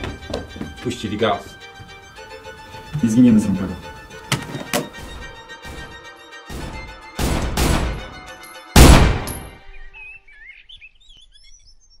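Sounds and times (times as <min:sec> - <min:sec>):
birds chirping: 0:00.0 - 0:05.4, 0:09.5 - 0:12.0.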